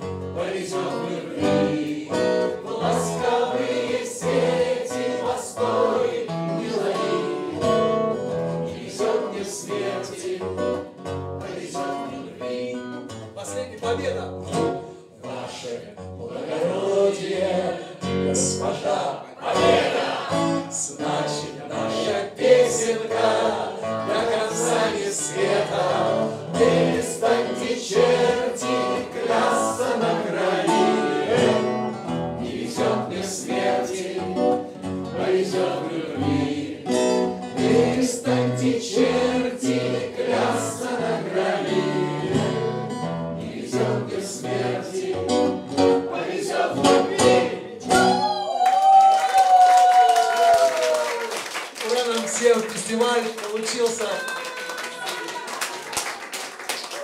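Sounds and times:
acoustic guitar strumming: 0.0s - 15.4s, 18.0s - 48.4s
group singing in unison: 0.2s - 13.0s, 14.8s - 48.2s.

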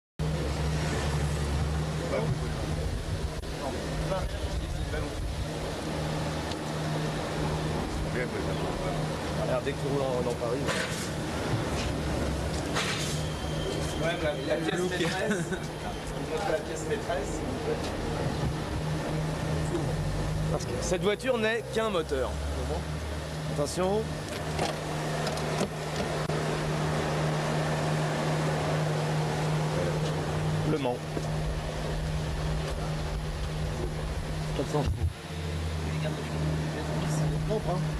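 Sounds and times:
car engine running steadily: 0.2s - 15.5s, 16.2s - 37.9s
road and wind noise: 0.2s - 37.9s.

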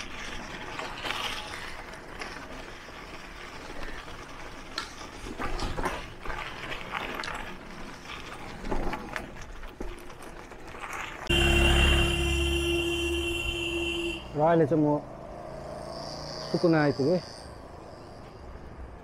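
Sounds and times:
bike rattling and clicking: 0.0s - 11.5s
tyres crunching on gravel: 0.0s - 14.0s
street traffic hum: 0.0s - 19.0s.

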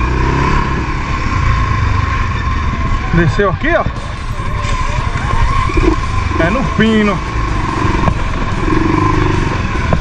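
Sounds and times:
atv engine running: 0.0s - 10.0s.

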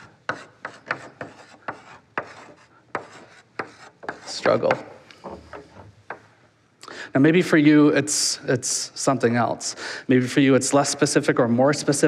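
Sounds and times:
chalk scratching on chalkboard: 0.0s - 6.2s.

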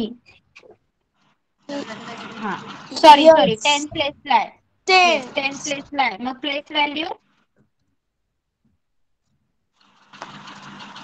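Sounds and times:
machine humming: 1.7s - 7.1s.

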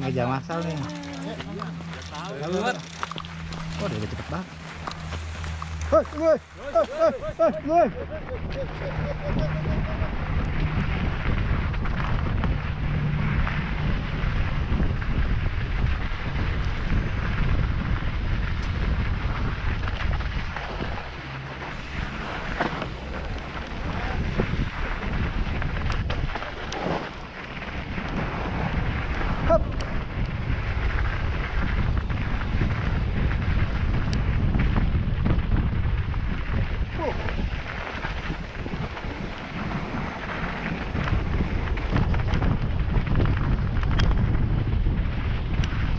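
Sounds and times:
bike rattling and knocking: 0.0s - 6.4s, 29.6s - 45.9s
tyres rumbling on dirt: 0.0s - 45.9s
wind buffeting microphone: 0.0s - 45.9s.

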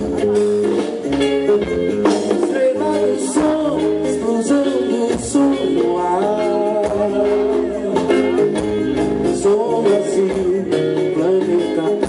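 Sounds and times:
live band playing: 0.0s - 12.0s.

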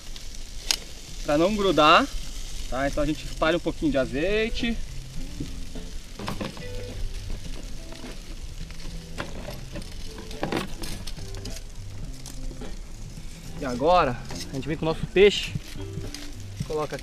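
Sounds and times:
soft background music with bass: 0.4s - 17.0s
wire grill rack clicks and knocks: 6.2s - 11.6s.

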